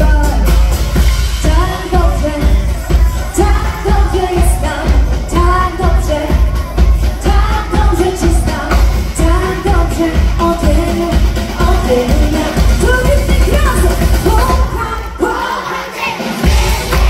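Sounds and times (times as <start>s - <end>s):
bass and drum beat: 0.0s - 17.0s
woman singing: 0.0s - 17.0s.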